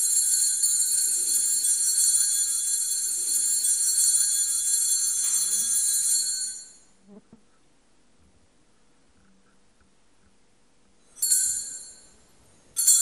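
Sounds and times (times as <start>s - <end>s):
altar bells ringing: 0.0s - 7.0s, 11.0s - 13.0s.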